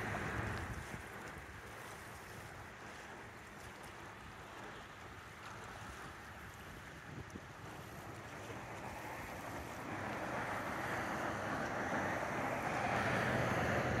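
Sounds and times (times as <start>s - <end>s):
vehicle tyre and engine rush: 0.0s - 4.7s, 5.6s - 14.0s
wind on microphone: 0.0s - 14.0s.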